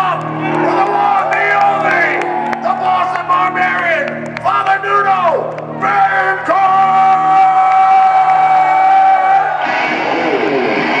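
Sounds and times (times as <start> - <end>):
crowd cheering and whooping: 0.0 - 3.2, 6.8 - 11.0.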